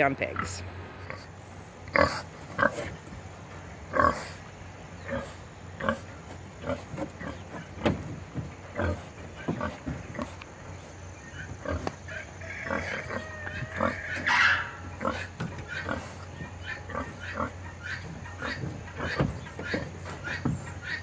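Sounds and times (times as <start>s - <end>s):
pig grunting: 0.2s - 3.2s, 3.8s - 10.4s, 11.2s - 21.0s
pig high-pitched call: 12.1s - 16.0s.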